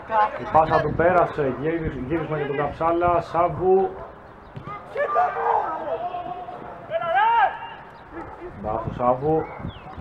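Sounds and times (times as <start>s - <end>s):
people shouting: 4.7s - 7.9s.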